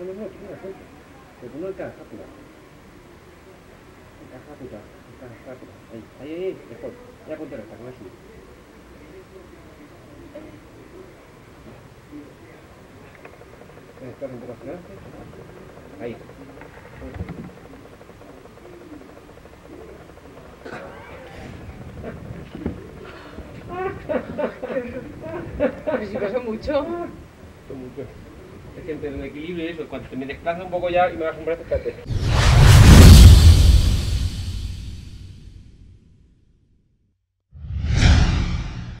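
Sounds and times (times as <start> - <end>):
people laughing: 23.2 - 26.3
whoosh sound effect: 32.1 - 35.3, 37.6 - 39.0.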